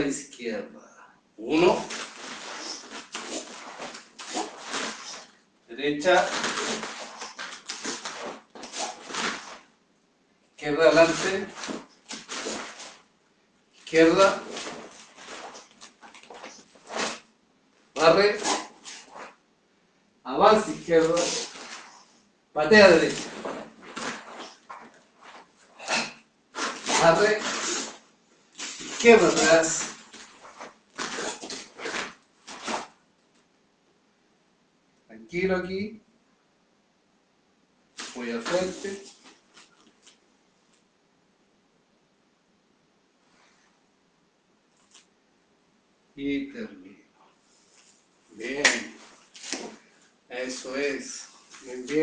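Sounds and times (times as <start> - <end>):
forceful breaths: 1.0 - 5.4, 22.8 - 32.9
swish of cotton uniform: 1.5 - 5.4, 6.0 - 9.7, 10.7 - 13.1, 13.8 - 17.3, 18.0 - 19.4, 20.6 - 22.1, 22.7 - 28.0, 28.6 - 33.0.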